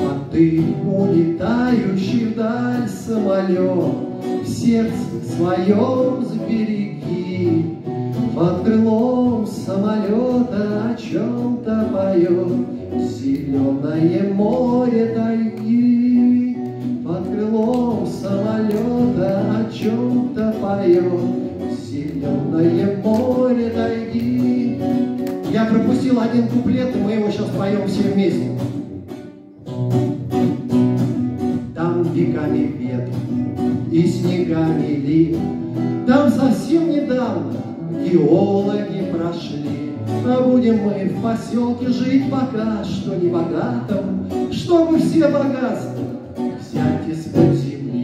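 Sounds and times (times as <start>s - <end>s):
man singing: 0.0s - 29.0s, 31.4s - 48.0s
acoustic guitar: 0.0s - 48.0s.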